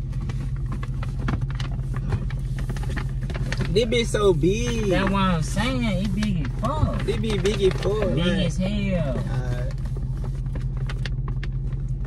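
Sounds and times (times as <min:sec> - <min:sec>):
paper bag rustling: 0:00.0 - 0:08.6
car engine idling: 0:00.0 - 0:12.0.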